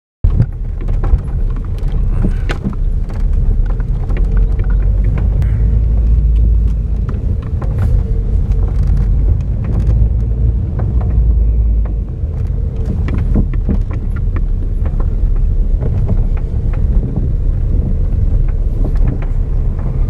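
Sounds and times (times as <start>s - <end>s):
engine and tyre rumble: 0.2s - 20.0s
small clicks and knocks: 0.3s - 20.0s.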